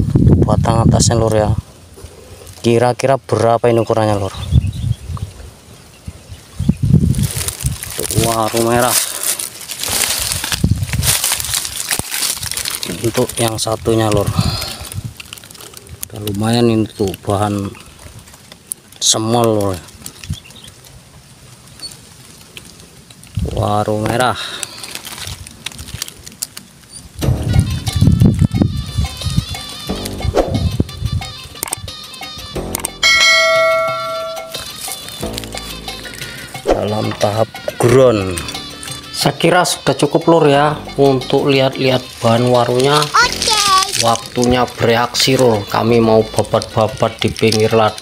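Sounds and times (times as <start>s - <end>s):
dry leaves crunching underfoot: 6.8s - 27.4s, 34.5s - 37.1s, 41.2s - 48.0s
low thumps: 27.2s - 31.3s
bell-like ding: 33.0s - 34.6s.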